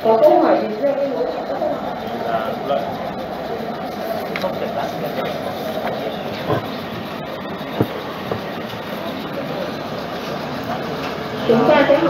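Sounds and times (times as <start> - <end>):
room background noise: 0.0 - 12.0.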